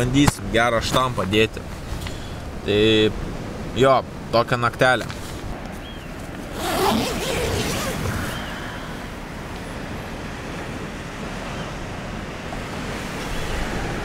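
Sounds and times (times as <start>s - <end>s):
wind: 0.0s - 14.0s.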